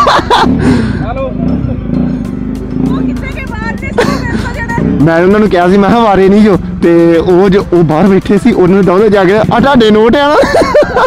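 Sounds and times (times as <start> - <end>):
motorcycle engine idling: 0.0 - 11.0
people talking: 2.8 - 10.5.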